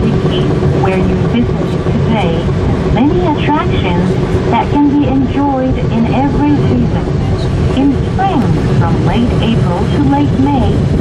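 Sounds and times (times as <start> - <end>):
announcement over loudspeaker: 0.0 - 11.0
cable car cabin rumble: 0.0 - 11.0.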